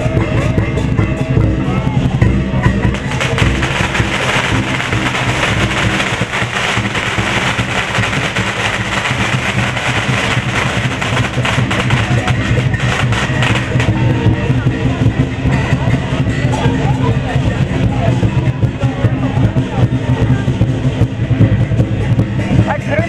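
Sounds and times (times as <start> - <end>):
lion dance drums: 0.0 - 23.0
crashing cymbal hits: 2.8 - 14.0.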